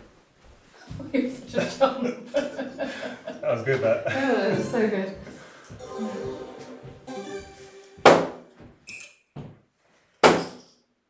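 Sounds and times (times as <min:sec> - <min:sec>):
darts hitting electronic dartboard: 0:08.0 - 0:08.5.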